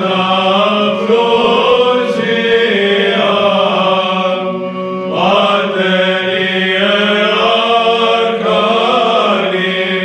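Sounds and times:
held vocal drone: 0:00.0 - 0:10.0
monks chanting melody: 0:00.0 - 0:10.0.

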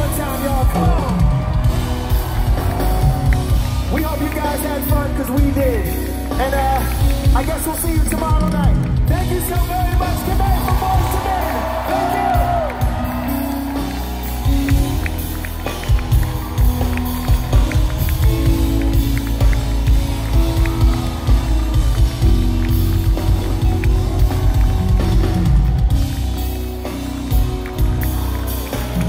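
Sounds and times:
crowd clapping and cheering: 0:00.0 - 0:29.0
live band playing: 0:00.0 - 0:29.0.

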